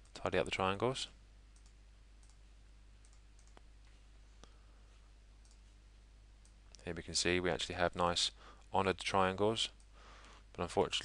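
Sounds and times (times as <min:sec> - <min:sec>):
low steady hum: 0:00.0 - 0:11.0
computer mouse clicks: 0:01.6 - 0:02.4, 0:03.0 - 0:03.7, 0:05.4 - 0:05.7.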